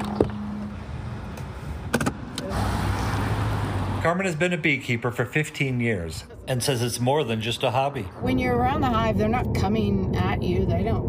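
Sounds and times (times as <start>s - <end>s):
car driving by: 0.0s - 6.2s.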